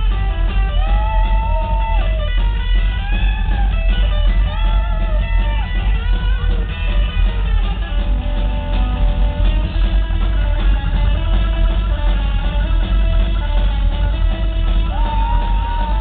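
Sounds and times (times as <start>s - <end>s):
rockabilly band playing: 0.0s - 16.0s
twangy electric guitar lead: 0.0s - 16.0s.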